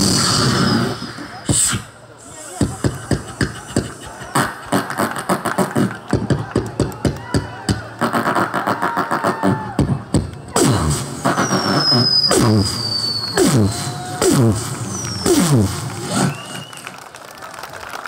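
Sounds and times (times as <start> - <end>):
beatboxing through microphone: 0.0 - 16.6.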